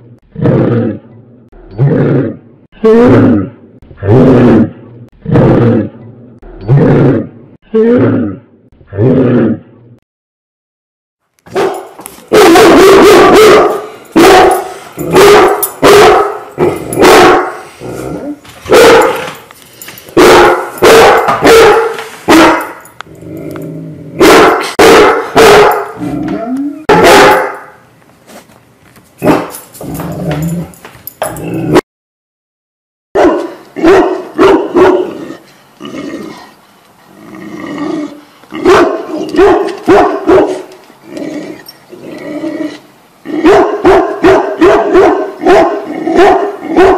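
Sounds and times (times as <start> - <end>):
large dogs barking deeply: 11.5 - 17.7, 18.7 - 19.3, 20.2 - 22.9, 24.2 - 26.1, 26.9 - 27.7, 33.2 - 35.4, 38.5 - 40.7, 43.3 - 46.9.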